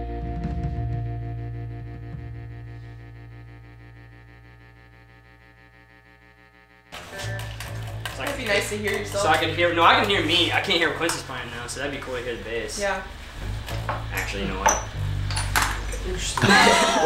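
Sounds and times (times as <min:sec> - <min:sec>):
electric guitar and bass chord ringing: 0:00.0 - 0:07.4, 0:12.8 - 0:17.0
studio room noise with low hum: 0:00.0 - 0:07.4.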